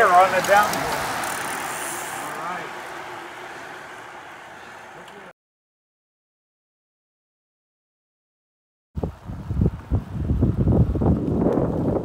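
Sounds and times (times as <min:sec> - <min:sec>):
faint voices: 0:00.0 - 0:05.3
vehicle passing on road: 0:00.0 - 0:05.3.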